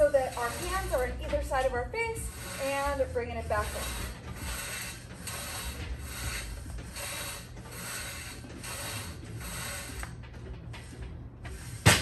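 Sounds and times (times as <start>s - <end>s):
steel cable rubbing through pulleys: 0.0s - 12.0s.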